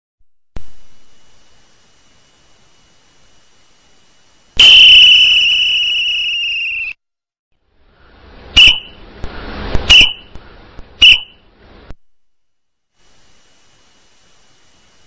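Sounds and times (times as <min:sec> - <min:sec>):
whistle blasts: 0:04.6 - 0:07.0, 0:08.6 - 0:09.0, 0:09.9 - 0:10.3, 0:11.0 - 0:11.4.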